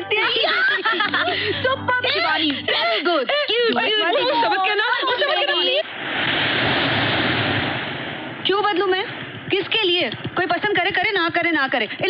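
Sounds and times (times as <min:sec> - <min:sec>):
waves splashing over rocks: 0:05.8 - 0:10.4.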